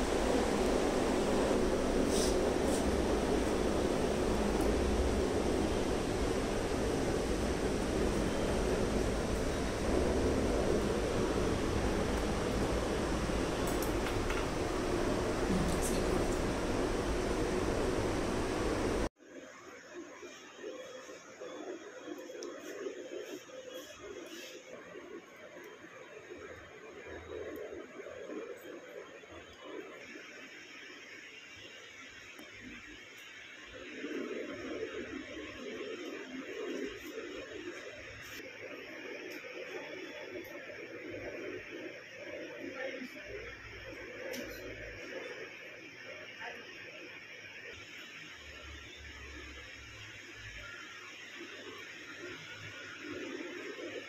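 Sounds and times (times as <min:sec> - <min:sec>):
steady hiss: 0:00.0 - 0:19.1
muffled indistinct indoor sounds: 0:00.0 - 0:54.0.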